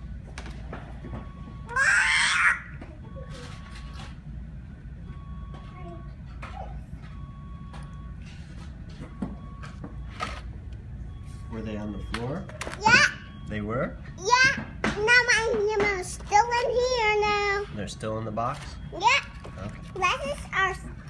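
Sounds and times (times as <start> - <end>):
low background hum: 0.0 - 21.0
child squealing: 1.7 - 2.8
faint electronic beep: 11.0 - 12.6.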